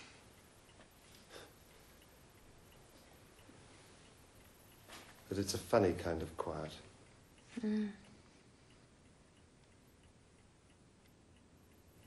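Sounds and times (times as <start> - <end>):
clock ticking faintly: 0.0 - 12.0.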